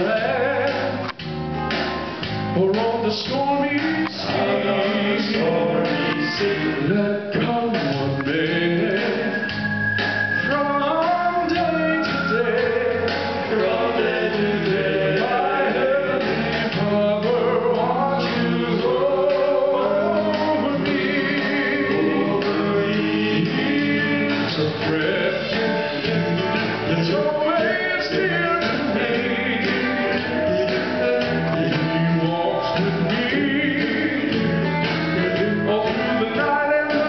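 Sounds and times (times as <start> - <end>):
male vocal group singing in harmony: 0.0 - 1.2, 2.6 - 37.0.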